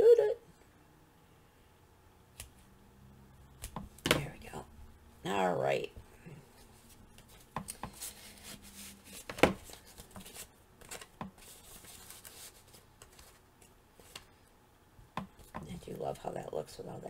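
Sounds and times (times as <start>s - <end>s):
paper rustling: 6.8s - 14.3s.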